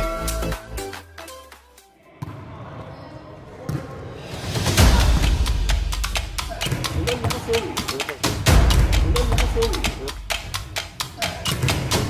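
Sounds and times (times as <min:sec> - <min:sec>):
players' voices: 0:06.4 - 0:10.3.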